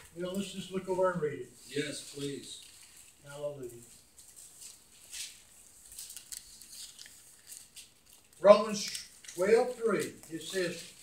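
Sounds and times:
paper pages rustling: 0.0 - 11.0.

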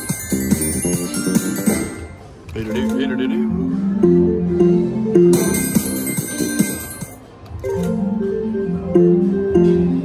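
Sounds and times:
slot machine win jingle: 0.0 - 9.9.

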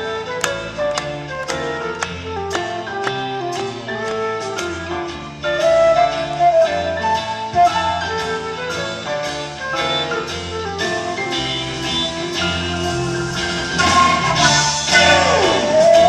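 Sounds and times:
flute melody: 0.0 - 16.0
keyboards: 0.0 - 16.0
steady drum beat: 0.0 - 16.0.

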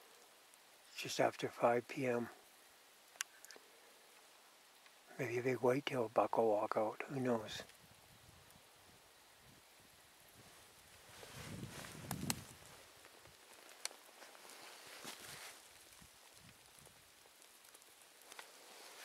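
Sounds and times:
faint outdoor hiss: 0.0 - 19.0.

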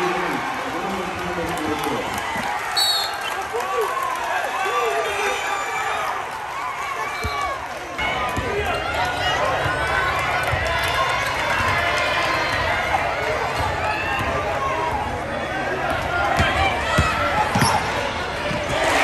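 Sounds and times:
crowd voices and shouts: 0.0 - 19.0.

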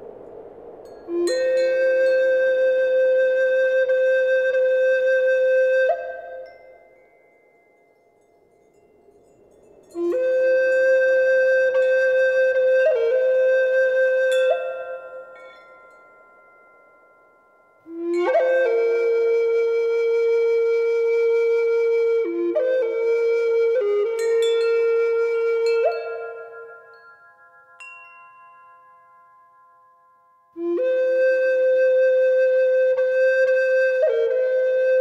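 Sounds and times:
faint high ringing tone: 0.0 - 4.3, 4.9 - 18.8, 24.2 - 30.6
flute note: 0.0 - 6.6, 10.0 - 15.5, 17.9 - 26.8, 30.6 - 35.0
faint high tinkles: 0.8 - 2.6, 6.1 - 12.2, 14.2 - 18.6, 24.2 - 30.6.

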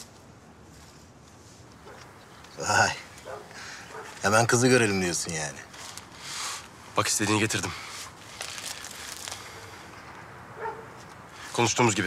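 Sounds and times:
plastic bottle crinkling: 8.2 - 9.5.

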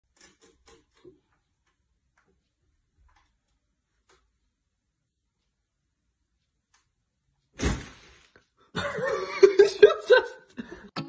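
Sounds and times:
cat claws scratching rope post: 0.1 - 1.8.

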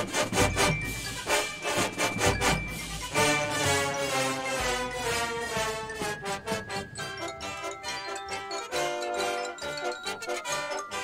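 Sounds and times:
sharp drum strokes: 0.0 - 7.2
sustained brass chords: 0.0 - 11.0.

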